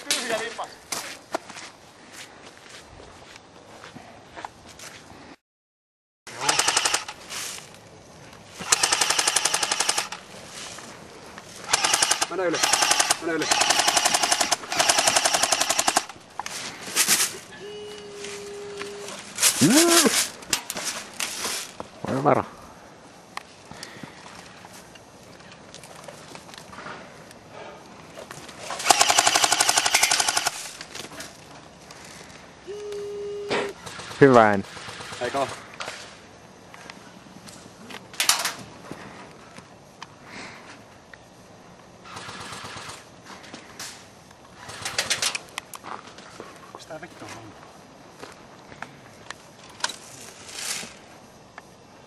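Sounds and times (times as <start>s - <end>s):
airsoft rifle firing full auto: 6.3s - 7.2s, 8.6s - 10.2s, 11.7s - 16.2s, 28.8s - 30.7s, 33.8s - 35.6s, 42.0s - 43.0s.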